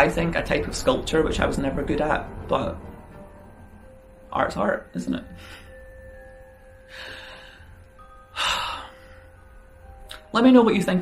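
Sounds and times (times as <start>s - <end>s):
quiet background music: 0.0s - 11.0s
person breathing: 5.3s - 5.9s, 6.8s - 9.4s.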